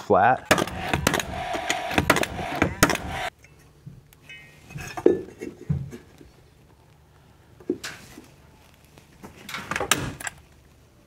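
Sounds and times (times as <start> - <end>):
nail gun shots: 0.5 - 3.3
nail gun whir: 0.5 - 3.3.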